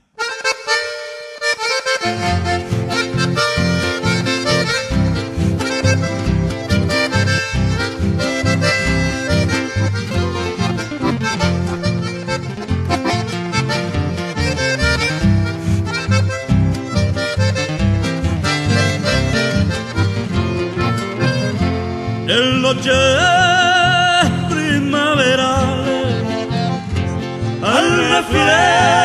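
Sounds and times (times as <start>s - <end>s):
accordion melody: 0.0s - 29.0s
guitar: 0.0s - 29.0s
pulsing bass: 2.1s - 29.0s
people singing with vibrato: 22.3s - 26.7s, 27.4s - 29.0s.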